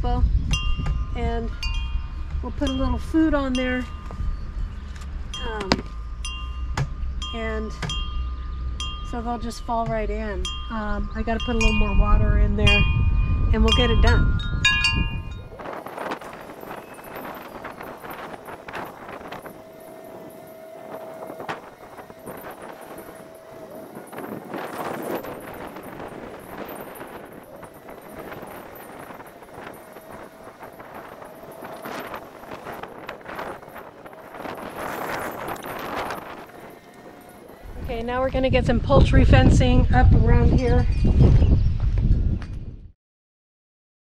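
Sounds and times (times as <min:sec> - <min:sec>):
wind noise: 0:00.0 - 0:43.0.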